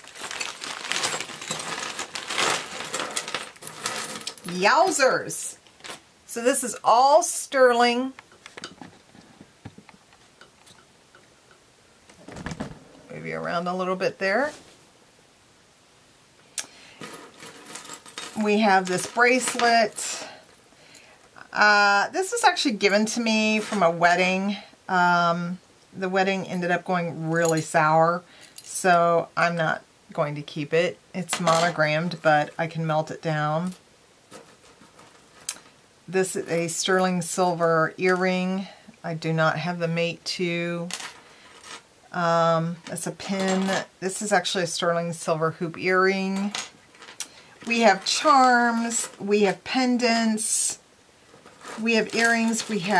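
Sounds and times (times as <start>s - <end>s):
jewelry clinking: 0.0s - 7.0s, 16.9s - 20.6s, 51.3s - 52.9s.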